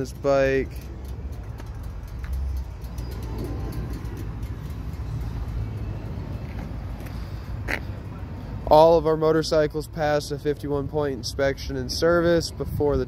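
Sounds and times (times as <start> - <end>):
distant road traffic rumble: 0.0 - 13.0.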